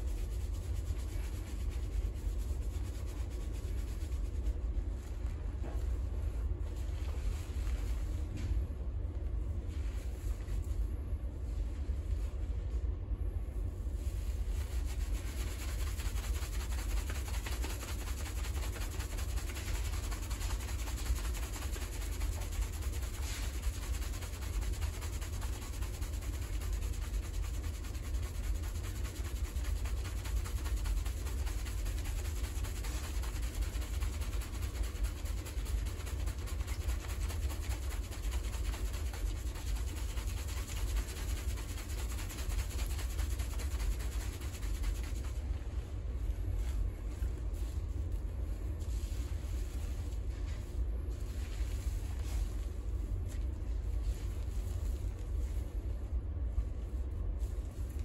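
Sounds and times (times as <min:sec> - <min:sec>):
fingers scrubbing lathered hair: 0:00.0 - 0:08.1, 0:13.9 - 0:45.6
constant low rumble: 0:00.0 - 0:58.0.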